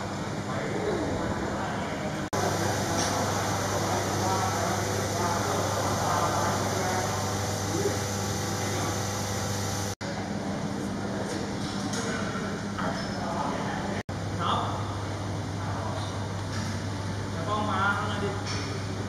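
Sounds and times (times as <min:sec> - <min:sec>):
room ventilation hum: 0:00.0 - 0:19.0
indistinct voices: 0:02.4 - 0:10.0.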